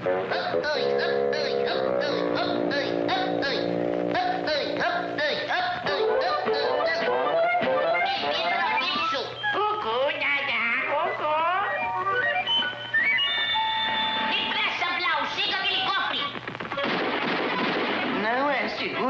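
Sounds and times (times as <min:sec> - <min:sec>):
cartoon music: 0:00.0 - 0:09.8, 0:10.5 - 0:14.5.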